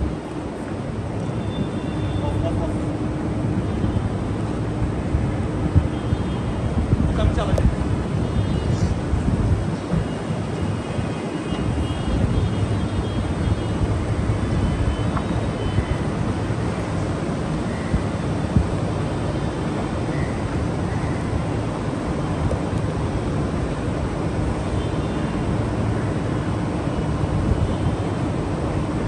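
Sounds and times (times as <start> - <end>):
wind rumble on microphone: 0.0 - 29.0.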